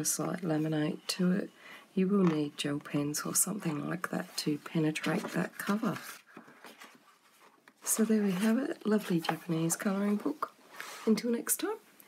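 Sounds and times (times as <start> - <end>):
book rubbing and rustling: 3.3 - 11.4.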